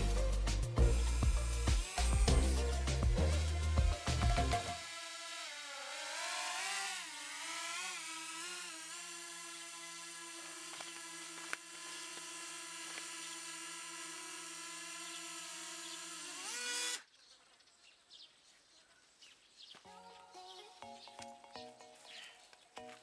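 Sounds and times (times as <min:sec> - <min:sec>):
drone propellers whining: 0:00.0 - 0:17.0.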